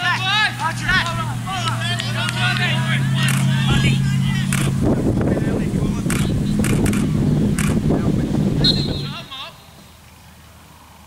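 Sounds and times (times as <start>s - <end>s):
low engine hum: 0.0s - 9.3s
outdoor rumble: 0.0s - 9.6s.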